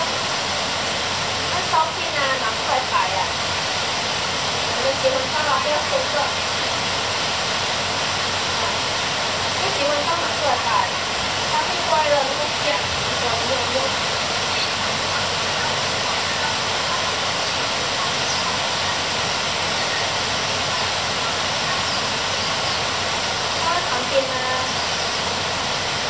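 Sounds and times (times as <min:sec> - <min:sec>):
heavy rain on leaves: 0:00.0 - 0:26.0.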